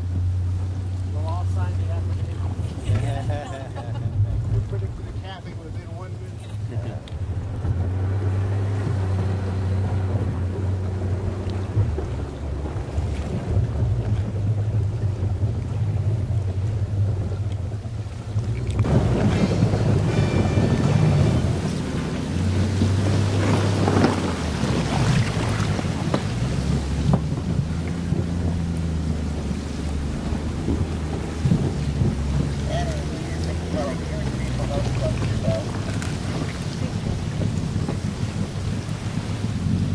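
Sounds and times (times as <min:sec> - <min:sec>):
boat engine humming: 0:00.0 - 0:39.9
rushing wind and water: 0:00.0 - 0:39.9
wind noise on microphone: 0:00.0 - 0:39.9.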